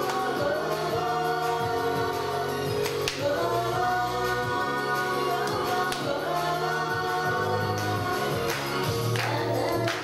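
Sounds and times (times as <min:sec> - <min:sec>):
backing music: 0:00.0 - 0:10.0
women singing pop song: 0:00.0 - 0:10.0.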